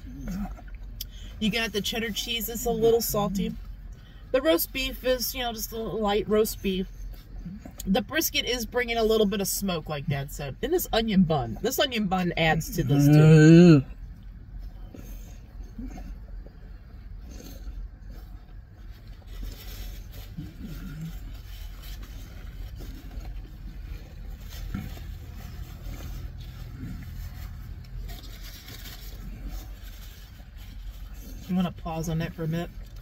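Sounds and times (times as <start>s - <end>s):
soft chewing: 0.0s - 1.4s, 6.8s - 8.0s, 13.8s - 31.8s, 32.4s - 33.0s
car cabin hum: 0.0s - 33.0s.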